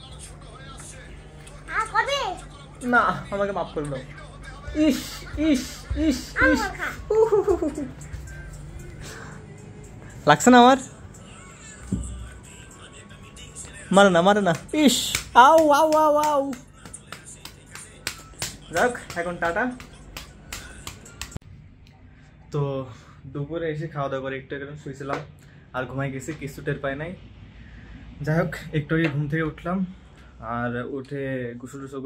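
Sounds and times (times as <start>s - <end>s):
man's voice: 0.0s - 21.4s
person speaking: 4.7s - 21.4s.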